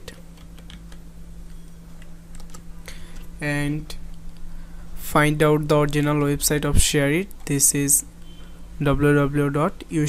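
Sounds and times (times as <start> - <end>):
steady low hum: 0.0 - 10.0
computer keyboard keystrokes: 0.1 - 1.0, 1.6 - 2.6.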